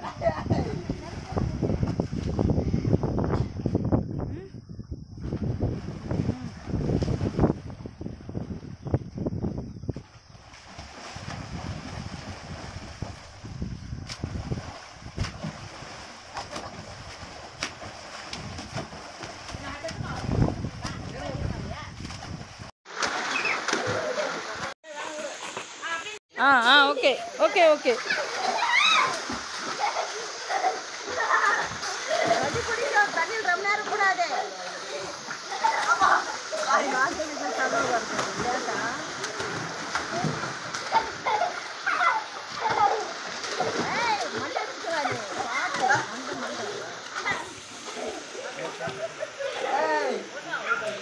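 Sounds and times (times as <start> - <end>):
water splashing in pool: 10.0 - 51.0
people shouting: 28.0 - 29.3
children shouting: 28.0 - 30.2, 41.0 - 46.2.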